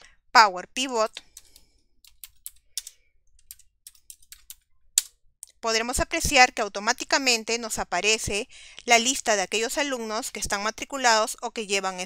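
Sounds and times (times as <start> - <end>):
computer keyboard keystrokes: 1.1 - 5.1.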